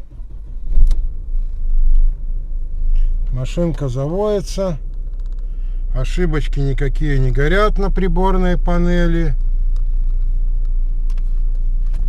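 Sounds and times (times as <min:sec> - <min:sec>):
car engine starting and running: 0:00.0 - 0:12.0.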